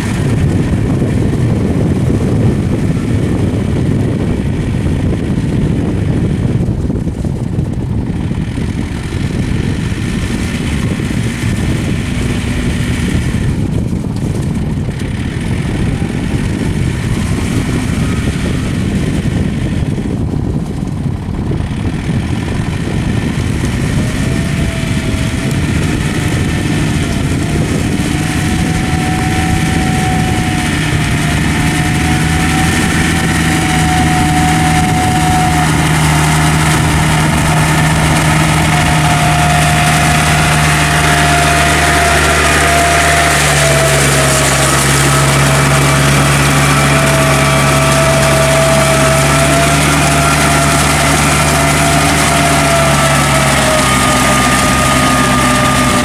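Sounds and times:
tractor diesel engine under load: 0.0 - 56.0.

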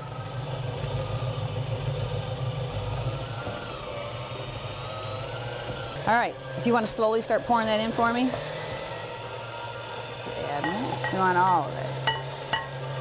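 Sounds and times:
stand mixer motor whining: 0.0 - 13.0.

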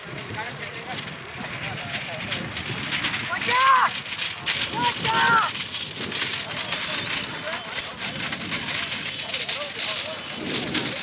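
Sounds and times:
cart wheels and hooves rattling: 0.0 - 11.0
distant shouts: 3.2 - 5.6.

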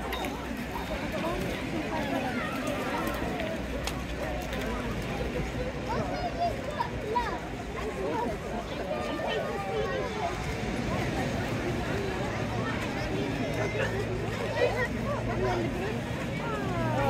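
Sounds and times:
crowd babble of voices: 0.0 - 17.0.

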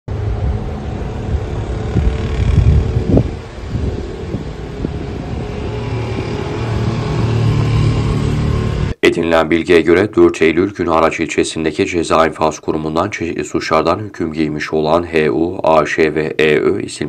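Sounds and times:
low street rumble: 0.1 - 9.5.

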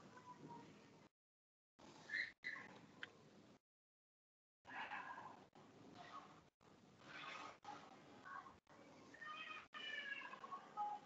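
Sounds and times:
faint cat meow: 9.2 - 10.5.

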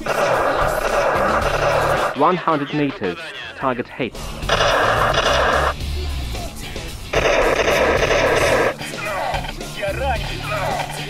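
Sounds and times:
synthetic electronic blaster bursts: 0.0 - 2.8, 4.4 - 5.8, 7.1 - 8.8
background music: 0.0 - 11.0.

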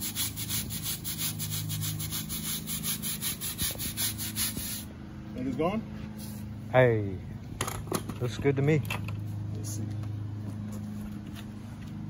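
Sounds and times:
steady low engine hum: 0.0 - 12.0.

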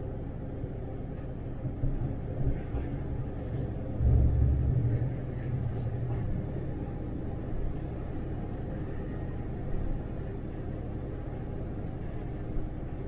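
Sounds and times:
bus engine rumble: 0.0 - 13.0.

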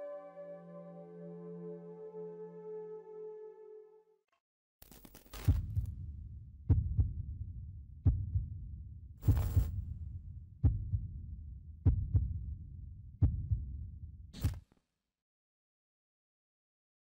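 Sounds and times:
heartbeat double thumps: 6.7 - 7.4, 8.0 - 8.6, 9.2 - 9.9, 10.6 - 11.2, 11.8 - 12.5, 13.2 - 13.8.

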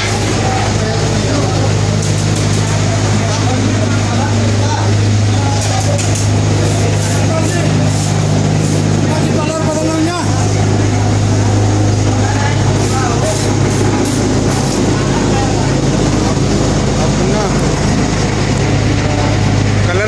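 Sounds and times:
machinery electric hum: 0.0 - 20.0
voices: 0.0 - 20.0.

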